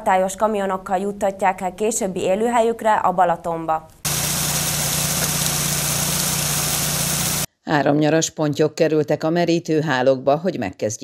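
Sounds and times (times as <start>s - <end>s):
engine idling: 4.1s - 7.5s.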